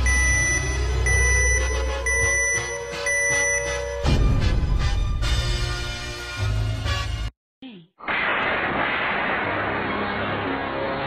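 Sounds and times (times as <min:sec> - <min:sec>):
explosion-like blast: 0:08.1 - 0:11.0.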